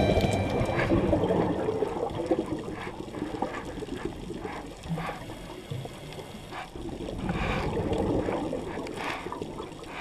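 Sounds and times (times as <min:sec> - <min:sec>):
underwater bubbling: 0:00.0 - 0:10.0.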